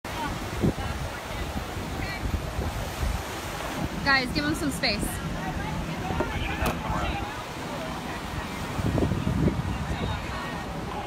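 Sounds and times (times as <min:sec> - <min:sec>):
ocean surf washing on beach: 0:00.1 - 0:11.0
wind buffeting microphone: 0:00.1 - 0:11.0.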